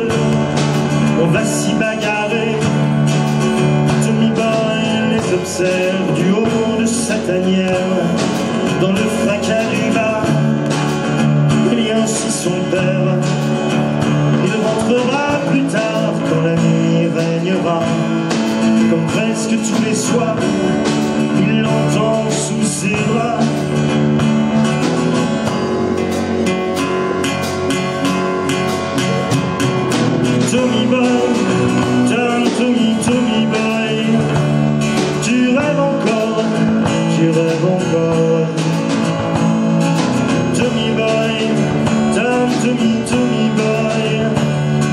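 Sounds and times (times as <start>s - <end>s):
acoustic guitars: 0.0s - 44.9s
drum kit: 0.0s - 44.9s.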